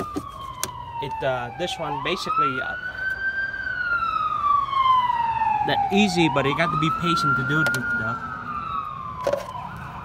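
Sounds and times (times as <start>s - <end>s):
siren wailing: 0.0s - 10.0s.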